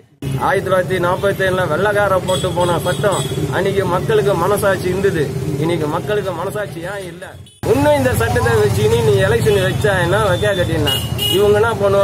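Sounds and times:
street traffic: 0:00.0 - 0:12.0
man talking: 0:00.2 - 0:12.0.

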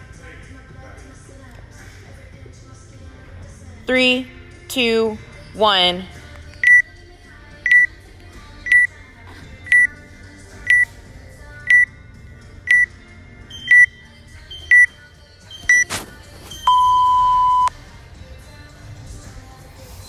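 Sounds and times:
timer short high beeps: 0:13.5 - 0:14.9, 0:16.6 - 0:17.7.

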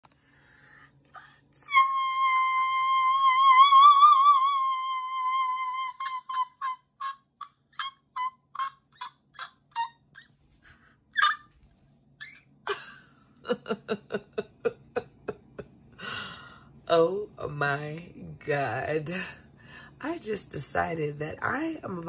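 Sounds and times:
woman singing high notes: 0:01.3 - 0:07.0.

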